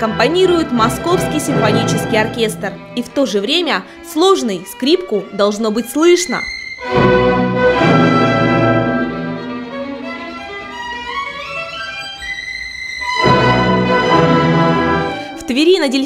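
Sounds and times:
symphony orchestra: 0.0s - 3.2s, 6.8s - 15.5s
solo violin: 0.0s - 15.6s.

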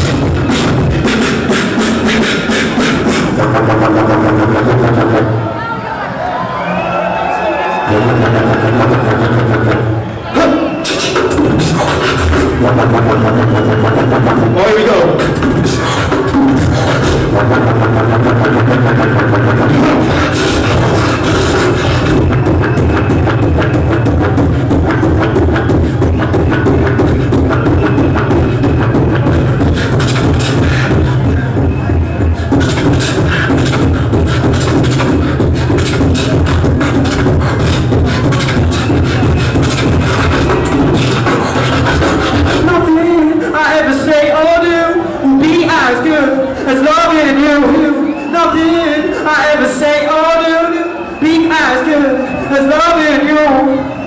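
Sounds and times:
beatboxing drum-like hits: 0.0s - 5.3s, 7.9s - 44.1s.

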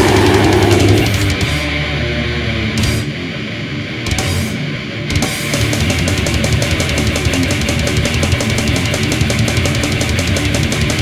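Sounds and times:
drum and cymbal hit: 0.0s - 1.6s
distorted electric guitar riff: 0.0s - 11.0s.

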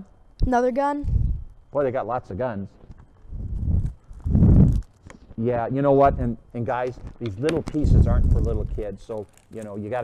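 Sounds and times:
plastic bags and pieces rustling: 6.9s - 10.0s.

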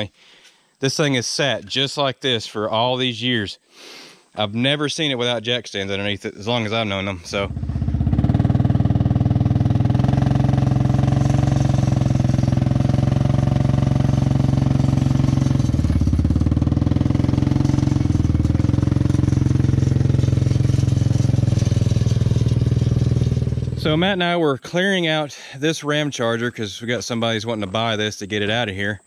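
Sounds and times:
atv engine running under load: 7.1s - 24.2s.

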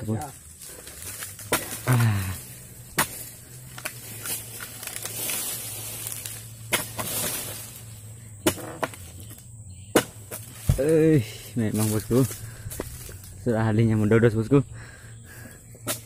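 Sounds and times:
falling frond rustle: 0.3s - 8.0s
chisel striking palm fronds: 0.8s - 2.2s, 2.9s - 7.8s, 8.4s - 11.1s.

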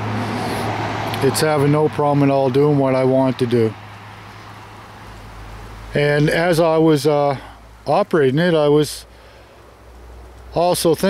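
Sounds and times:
steady hiss: 3.0s - 11.0s.

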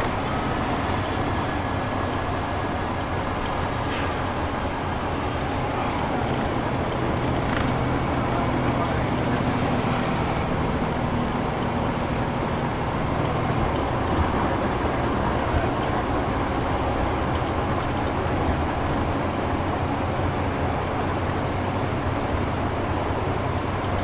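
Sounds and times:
bus diesel engine running: 0.0s - 24.0s
road and tyre noise: 0.0s - 24.0s.

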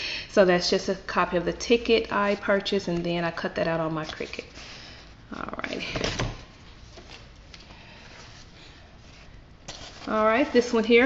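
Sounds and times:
paper handling noise: 2.2s - 5.0s, 5.7s - 10.8s.

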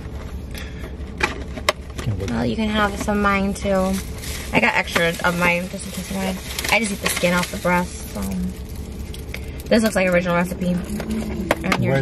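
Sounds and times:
air conditioning: 0.0s - 12.0s
idling engine hum: 0.0s - 12.0s
plastic bag crinkling: 2.8s - 11.6s.

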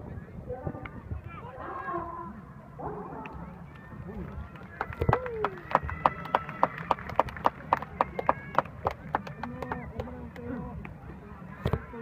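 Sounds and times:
fans clapping in rhythm: 4.5s - 11.0s.

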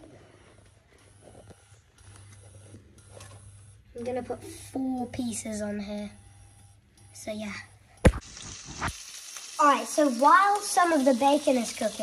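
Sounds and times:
soft handling clicks and rustles: 0.0s - 3.7s.

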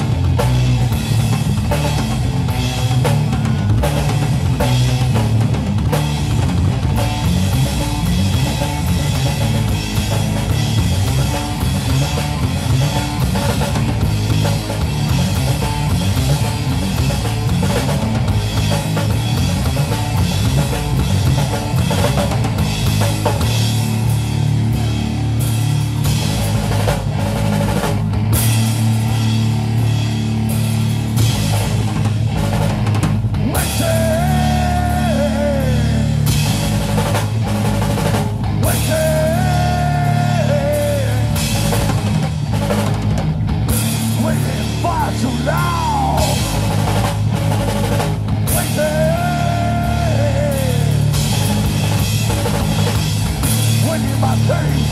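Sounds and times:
bass guitar: 0.0s - 54.9s
drum kit: 0.0s - 54.9s
electric guitar: 0.0s - 54.9s.

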